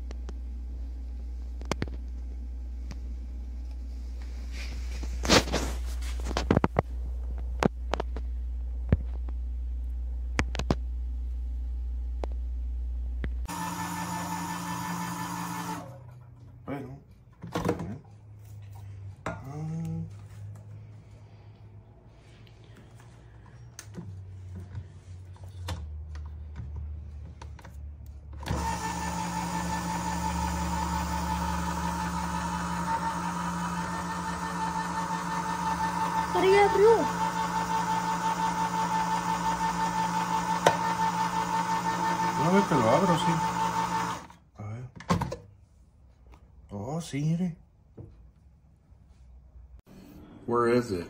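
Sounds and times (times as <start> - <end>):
small electric motor running: 28.5 - 44.2
person speaking: 36.2 - 37.3, 42.3 - 43.6.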